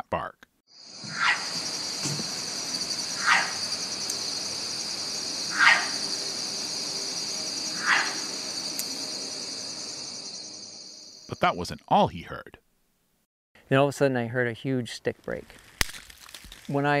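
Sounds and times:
night insects chorus: 0:00.7 - 0:11.7
animal barking calls: 0:00.9 - 0:10.2.

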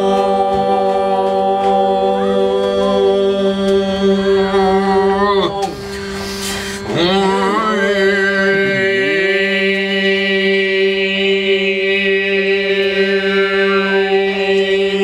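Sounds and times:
held drone note: 0:00.0 - 0:15.0
two men singing a chant: 0:00.0 - 0:15.0
noisy hiss: 0:05.6 - 0:07.0.

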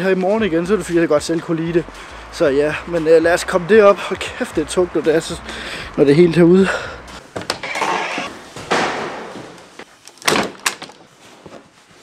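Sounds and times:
door swinging open: 0:07.4 - 0:09.2
door banging shut: 0:07.4 - 0:09.6.

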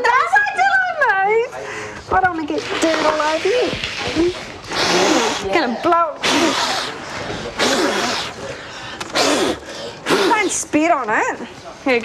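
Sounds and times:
soft breathing: 0:01.6 - 0:02.1, 0:08.2 - 0:10.1
person blowing a puff of air: 0:04.7 - 0:05.5, 0:06.2 - 0:08.5, 0:09.1 - 0:10.4.

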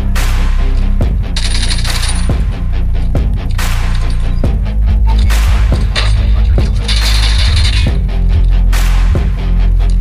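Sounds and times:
game background music with bass: 0:00.0 - 0:10.0
high metallic jingle: 0:01.3 - 0:02.6, 0:03.4 - 0:08.5.

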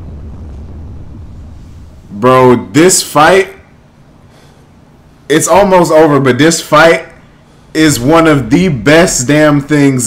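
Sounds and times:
faint windy hiss: 0:00.0 - 0:10.0
low steady rumble: 0:00.0 - 0:10.0.

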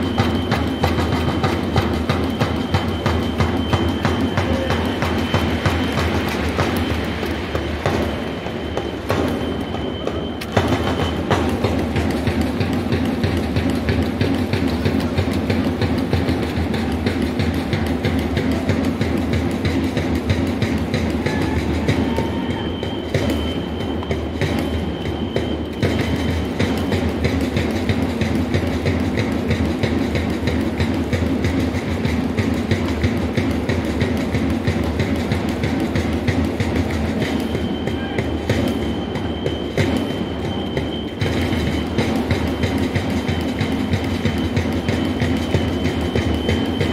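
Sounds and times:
electronic whistle high note: 0:00.0 - 0:11.8, 0:21.2 - 0:27.5, 0:37.2 - 0:46.9
crowd of fans: 0:00.0 - 0:46.9
taiko and snare drums: 0:00.0 - 0:46.9.

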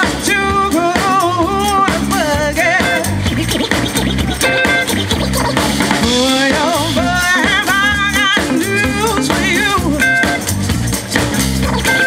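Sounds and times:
live band music: 0:00.0 - 0:12.0
record scratching: 0:02.8 - 0:06.9, 0:11.4 - 0:12.0.

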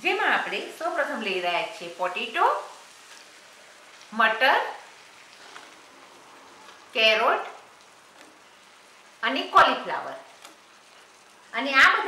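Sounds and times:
gravy sizzling in a pan: 0:00.0 - 0:12.0.

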